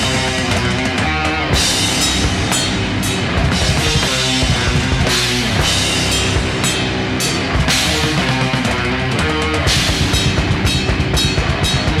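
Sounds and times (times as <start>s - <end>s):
busy drum kit: 0.0s - 12.0s
distorted guitars: 0.0s - 12.0s.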